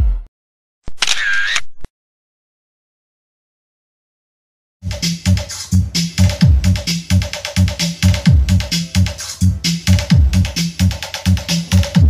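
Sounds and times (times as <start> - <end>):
camera shutter sound effect: 0.9 - 1.9
electronic dance music: 4.9 - 12.0.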